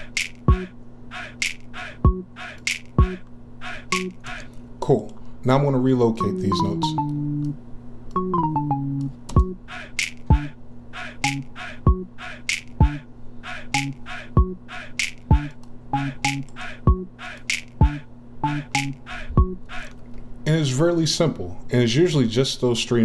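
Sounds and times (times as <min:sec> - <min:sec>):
clap and hi-hat hits: 0:00.0 - 0:04.2, 0:09.4 - 0:10.5, 0:11.2 - 0:13.0, 0:14.8 - 0:15.5, 0:16.2 - 0:18.0
kick drums: 0:09.4 - 0:09.6, 0:16.9 - 0:17.1.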